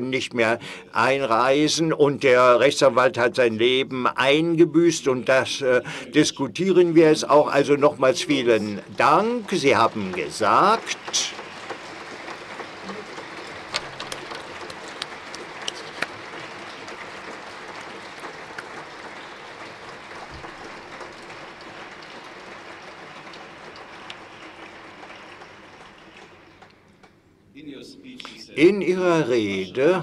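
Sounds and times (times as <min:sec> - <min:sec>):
audience applauding: 0:07.5 - 0:27.1.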